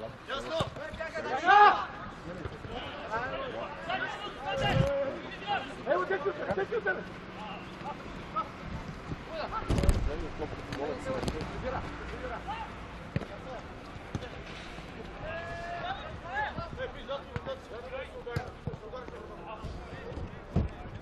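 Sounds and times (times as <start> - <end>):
players calling and shouting: 0.0 - 21.0.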